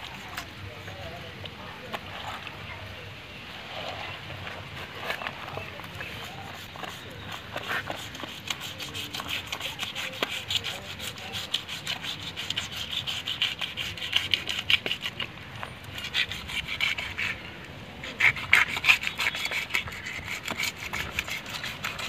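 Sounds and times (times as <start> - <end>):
knife scraping fish scales: 4.8 - 22.0.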